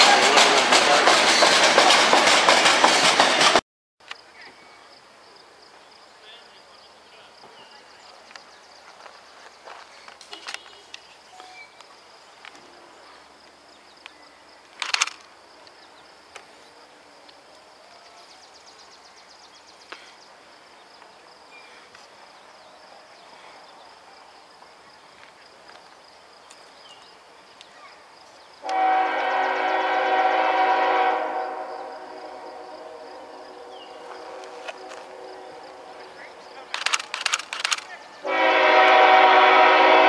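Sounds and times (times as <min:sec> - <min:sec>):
clicks: 0:36.7 - 0:37.9.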